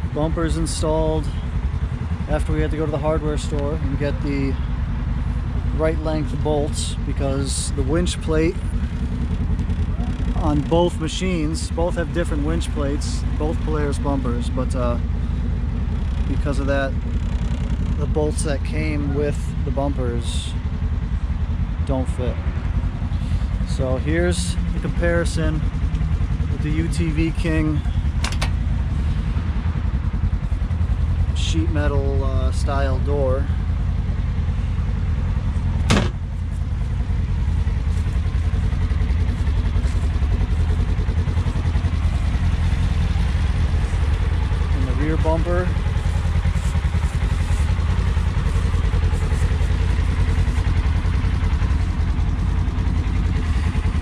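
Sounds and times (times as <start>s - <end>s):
engine idling: 0.0s - 54.0s
steady low rumble: 0.0s - 54.0s
metal door latch clicking: 28.2s - 28.5s.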